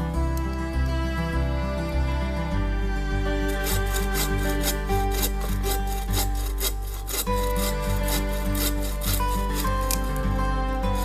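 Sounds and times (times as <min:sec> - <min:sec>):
background music: 0:00.0 - 0:11.0
hand saw cutting wood: 0:03.1 - 0:11.0.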